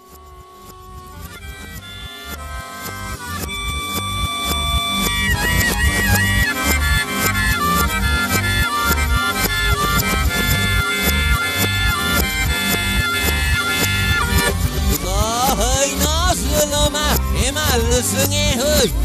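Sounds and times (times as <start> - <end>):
reversed folk-rock music with harmonica: 0.0 - 19.0
bass beat: 0.1 - 19.0.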